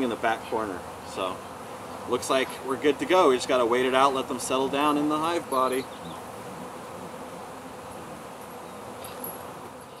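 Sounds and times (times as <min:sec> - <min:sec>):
bees buzzing: 0:00.0 - 0:10.0.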